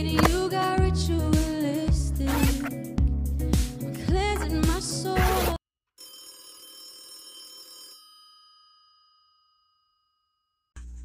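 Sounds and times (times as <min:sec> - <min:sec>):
bell-like chime: 0:07.7 - 0:10.6.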